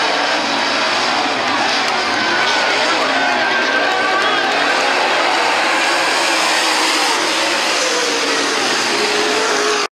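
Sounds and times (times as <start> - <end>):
race car engines running hard: 0.0 - 9.9.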